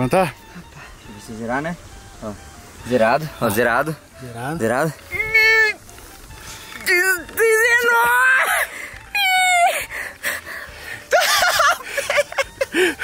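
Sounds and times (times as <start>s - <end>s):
men yelling and screaming: 6.8s - 9.9s.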